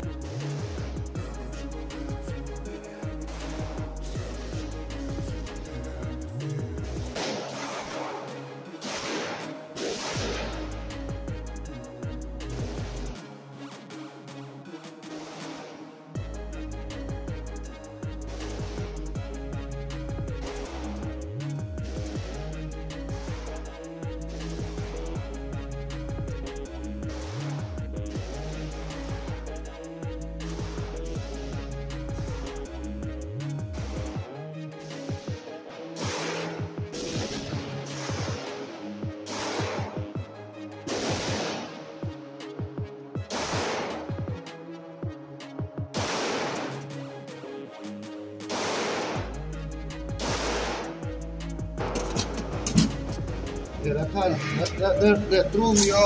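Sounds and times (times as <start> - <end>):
background music: 0.0 - 56.0
pistol shots: 7.2 - 10.7, 36.0 - 38.5, 39.2 - 40.0, 40.9 - 41.9, 43.3 - 44.1, 46.0 - 46.9, 48.5 - 49.3, 50.2 - 50.9.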